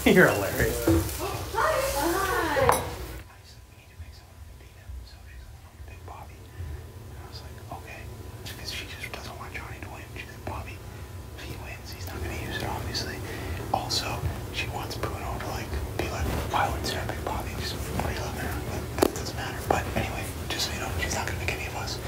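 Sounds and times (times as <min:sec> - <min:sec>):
men whispering: 0:00.0 - 0:01.1, 0:03.2 - 0:22.0
steady low hum: 0:00.0 - 0:22.0.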